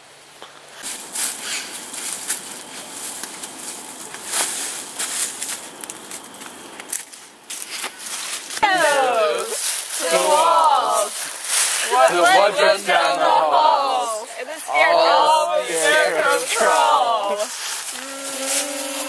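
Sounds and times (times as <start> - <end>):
footsteps on dry leaves: 0.8 - 12.8, 15.7 - 19.0
voices: 8.5 - 19.0.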